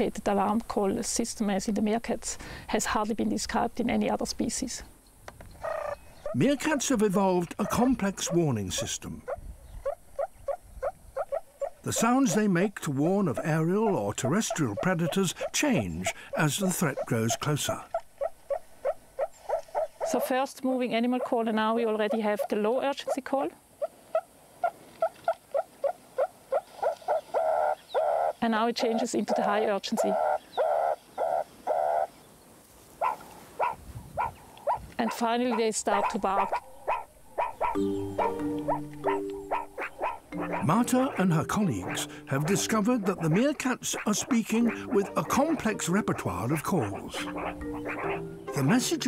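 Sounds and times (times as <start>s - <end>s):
meerkat alarm calls: 5.6s - 20.4s, 21.0s - 32.1s, 33.0s - 49.0s.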